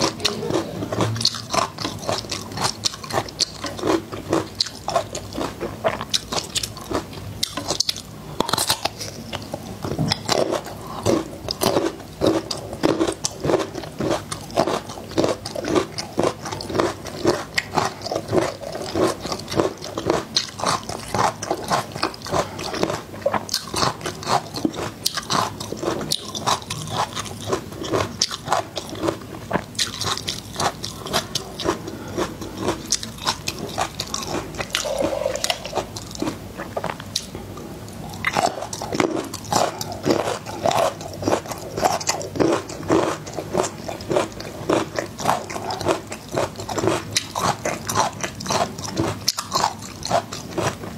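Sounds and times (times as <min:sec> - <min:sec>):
chewing garlic crunches: 0:00.0 - 0:50.9.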